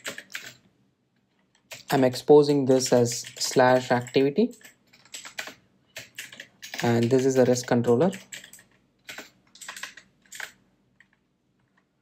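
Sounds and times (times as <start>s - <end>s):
typing on computer keyboard: 0.0s - 0.6s, 1.5s - 11.9s.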